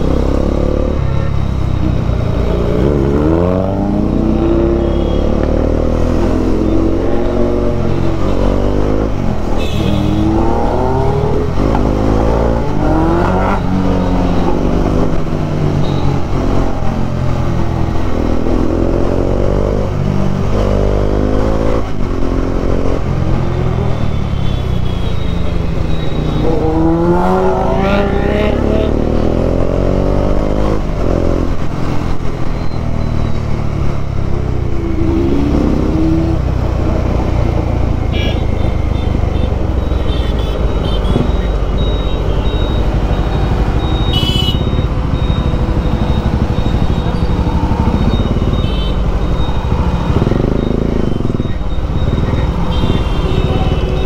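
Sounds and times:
motorcycle engine revving: 0.0s - 23.8s, 25.3s - 32.2s, 33.0s - 54.0s.

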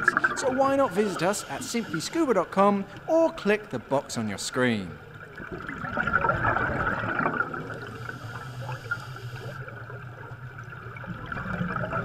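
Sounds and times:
underwater bubbling: 0.0s - 12.0s.

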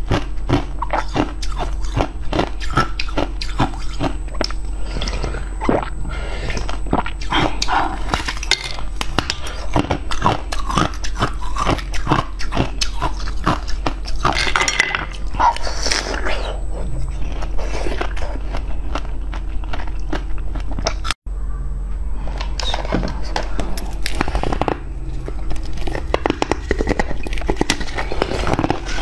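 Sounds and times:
close chewing and wet mouth sounds: 0.0s - 4.6s, 9.2s - 14.4s.

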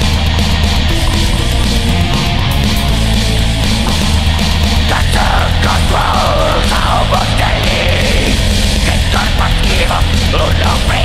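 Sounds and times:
black metal music: 0.0s - 11.0s.

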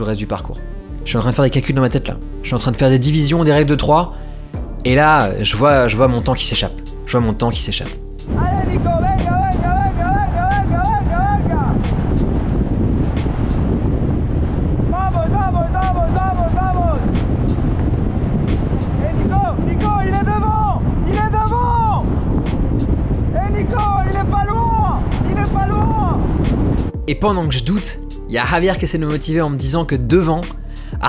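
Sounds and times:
wind on microphone: 8.1s - 27.6s
man shouting encouragement: 8.4s - 11.8s, 14.9s - 17.0s, 19.1s - 22.0s, 23.4s - 26.2s.

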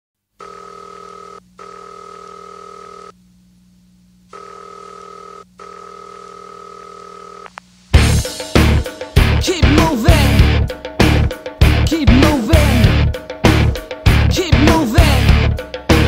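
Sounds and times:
electronic telephone ringing tone: 0.4s - 3.2s, 4.3s - 7.6s
low steady hum: 0.4s - 8.0s
rock band loud hit: 8.0s - 16.0s.

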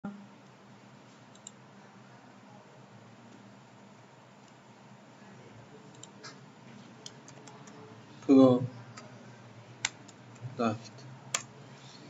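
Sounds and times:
low hum and hiss: 0.0s - 12.0s
computer mouse click: 1.3s - 1.6s, 5.9s - 6.4s.

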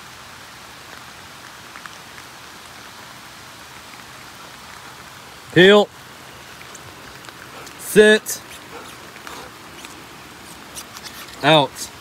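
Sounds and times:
light rain pattering: 0.0s - 12.0s.

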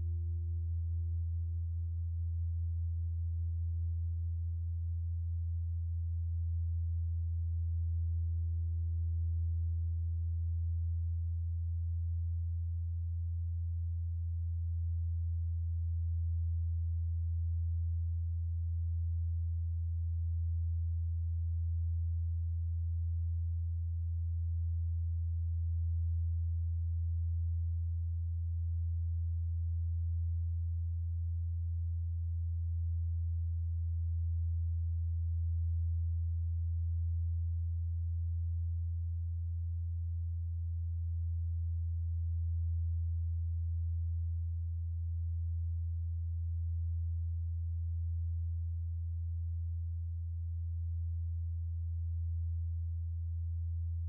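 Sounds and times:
low steady drone tone: 0.0s - 54.0s.

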